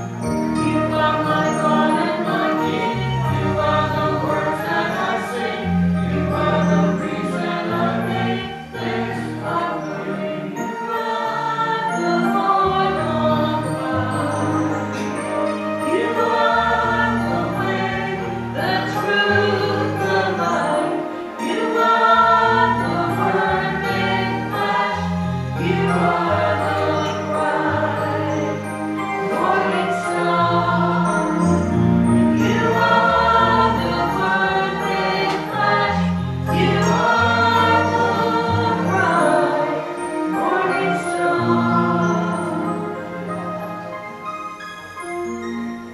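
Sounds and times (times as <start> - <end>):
choir singing a hymn: 0.0 - 44.2.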